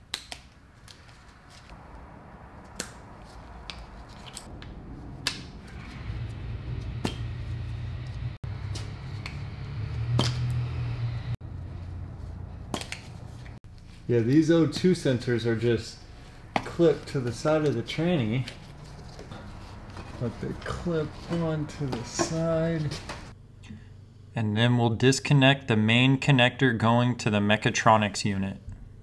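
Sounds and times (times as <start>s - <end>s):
low hum: 1.1s - 24.2s.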